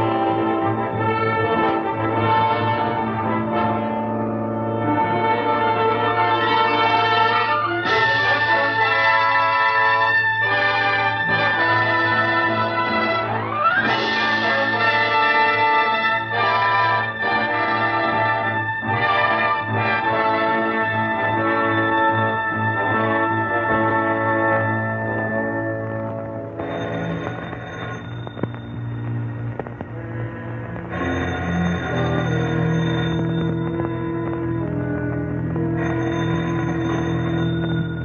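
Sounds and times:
orchestral music with brass chords: 0:00.0 - 0:27.7.

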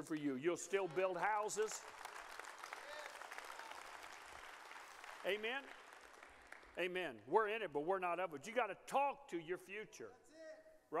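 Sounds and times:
congregation applauding: 0:00.0 - 0:07.2.

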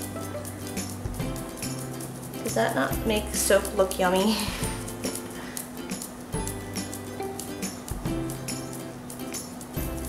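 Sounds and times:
background music with bass notes: 0:00.0 - 0:10.0.

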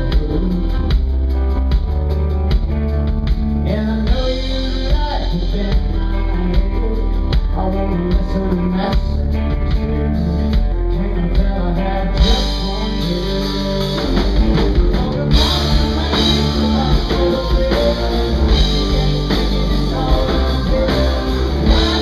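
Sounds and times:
man singing lead vocal: 0:00.0 - 0:01.6, 0:03.6 - 0:22.0
rock band playing loudly: 0:00.0 - 0:22.0.

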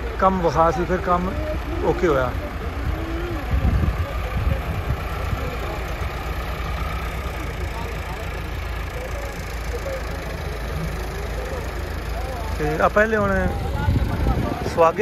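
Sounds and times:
tractor diesel engine running: 0:00.0 - 0:15.0.

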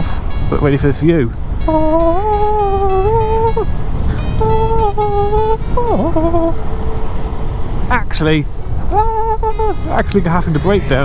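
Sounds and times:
melody of gliding high notes: 0:00.0 - 0:11.0
wind rumbling on microphone: 0:00.0 - 0:11.0.

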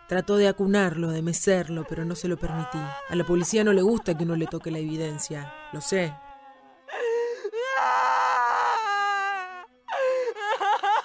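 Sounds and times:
drawn-out wailing cries: 0:00.0 - 0:11.0.

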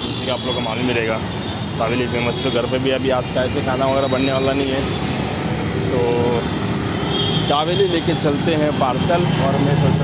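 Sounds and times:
traffic rumble and hiss: 0:00.0 - 0:10.0.

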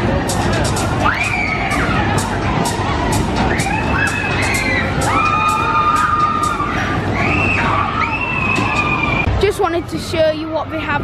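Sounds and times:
loud fairground music: 0:00.0 - 0:11.0.

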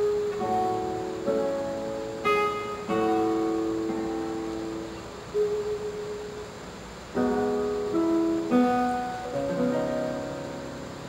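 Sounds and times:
classical guitar note plucked: 0:00.0 - 0:11.0.

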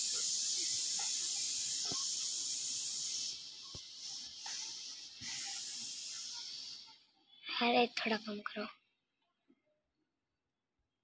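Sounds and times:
high-pitched hiss: 0:00.0 - 0:08.6.

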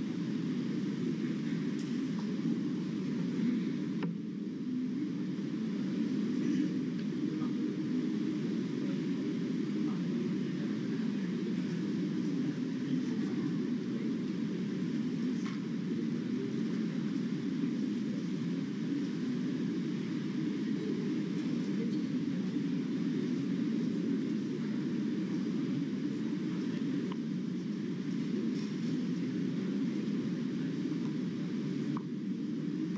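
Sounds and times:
low room rumble: 0:00.0 - 0:32.9.

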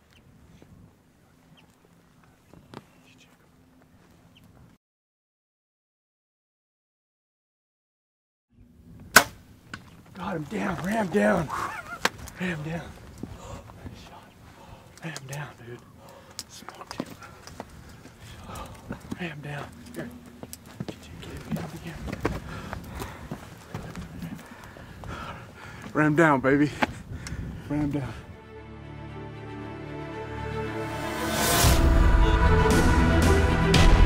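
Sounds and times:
bow release crack: 0:09.1 - 0:09.8
footsteps crunching through brush: 0:09.7 - 0:15.0, 0:16.4 - 0:26.0.

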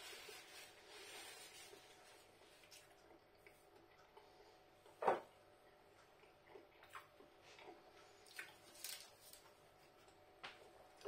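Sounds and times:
man chewing food: 0:01.7 - 0:11.0.

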